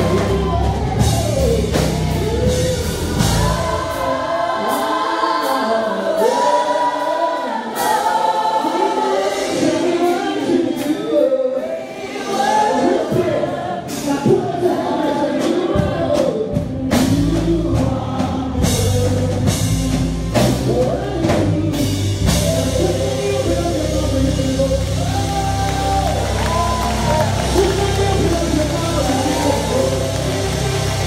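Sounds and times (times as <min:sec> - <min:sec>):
band playing: 0:00.0 - 0:31.0
gospel singing through a pa: 0:00.0 - 0:31.0.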